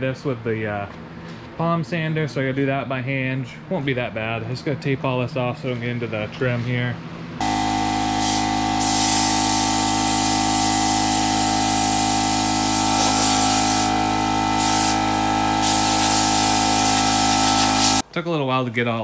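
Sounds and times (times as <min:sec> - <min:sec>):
steady hum: 0:07.3 - 0:18.0
compressed air hissing: 0:07.4 - 0:18.0.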